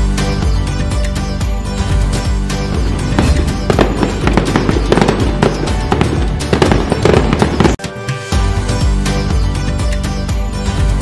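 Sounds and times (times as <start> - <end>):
festive music: 0.0 - 11.0
firework crackles and bangs: 2.6 - 7.8.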